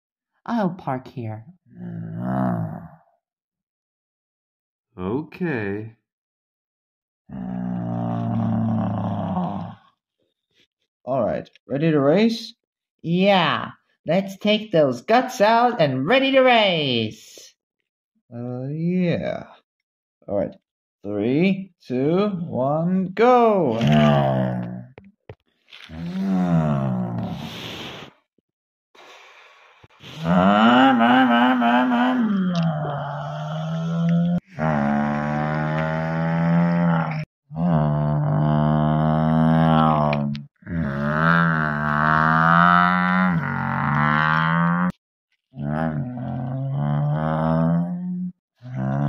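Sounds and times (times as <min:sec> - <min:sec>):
person imitating engine noise: 0:23.7 - 0:24.9, 0:25.9 - 0:27.5, 0:30.0 - 0:44.9.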